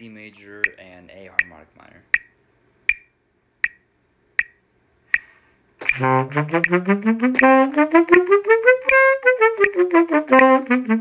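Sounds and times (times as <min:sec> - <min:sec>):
metronome clicking: 0:01.4 - 0:04.6, 0:05.2 - 0:11.0.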